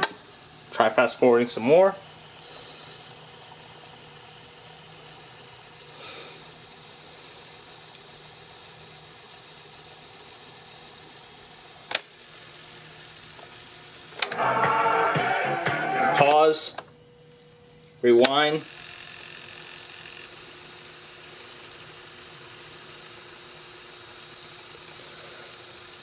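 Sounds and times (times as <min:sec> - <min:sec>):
cassette fast-forwarding whir: 0:00.0 - 0:26.0
rock and roll music from tape: 0:14.2 - 0:16.7.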